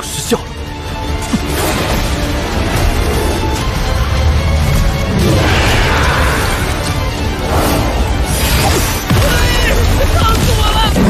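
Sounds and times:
dramatic soundtrack music: 0.0 - 11.0.

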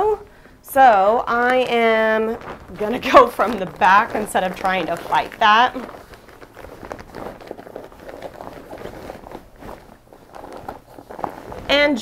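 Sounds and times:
denim fabric rustling: 0.7 - 12.0.

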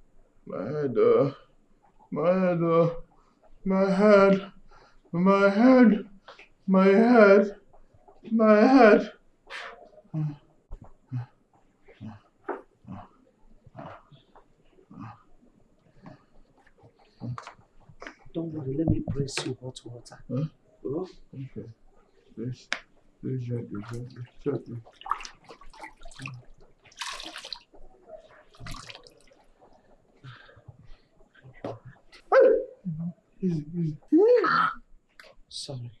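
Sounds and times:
water splash: 24.9 - 27.6, 28.5 - 29.3
water sloshing in bucket: 24.9 - 27.7, 28.5 - 29.4.

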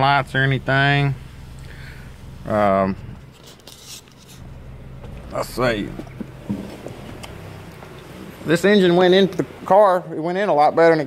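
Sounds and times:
car engine idling: 0.0 - 11.0
phone rustling: 3.2 - 5.2.

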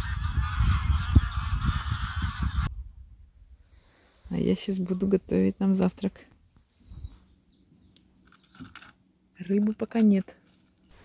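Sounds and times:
geese honking: 0.0 - 2.7
wind rumble on microphone: 0.0 - 5.4, 6.7 - 7.3.

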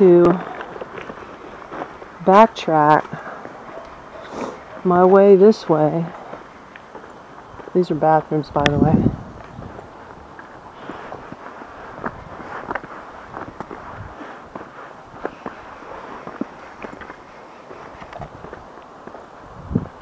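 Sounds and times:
footsteps on stone steps: 0.2 - 20.0.

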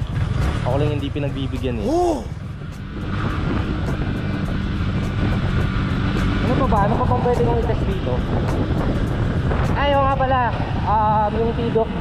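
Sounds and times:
motorcycle engine running: 0.0 - 12.0
wind rumbling on microphone: 0.0 - 12.0.

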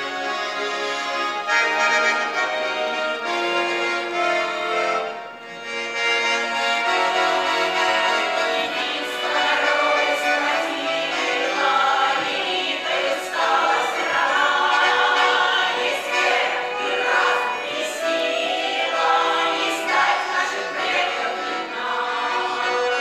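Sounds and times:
accordions playing folk tune: 0.0 - 23.0
women's choir singing: 7.3 - 23.0.

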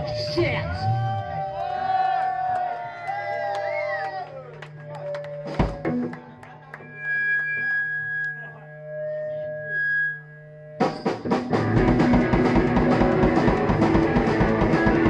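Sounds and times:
amp hum: 0.0 - 15.0
held electric guitar tones: 3.2 - 15.0
rock band drums and guitars: 5.4 - 6.1, 10.8 - 15.0.

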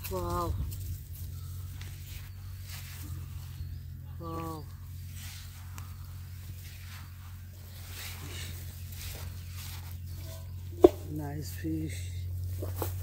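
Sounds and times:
rustling in grass: 0.0 - 13.0
steady low hum: 0.0 - 13.0.

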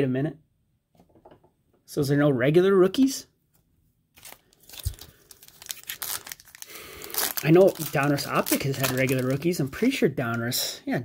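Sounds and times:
foil wrapper crinkling and tearing: 4.2 - 10.0
cards being handled: 4.2 - 10.5.

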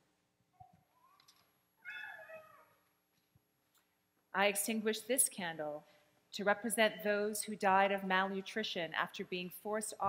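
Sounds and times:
faint high-pitched falling cry: 1.9 - 2.7.

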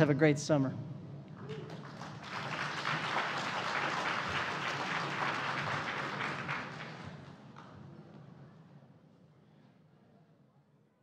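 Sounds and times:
audience applauding: 1.5 - 7.7.

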